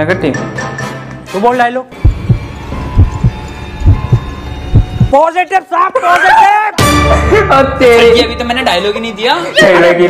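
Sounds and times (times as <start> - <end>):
heartbeat thumps: 2.0 - 5.2
man's voice: 5.1 - 10.0.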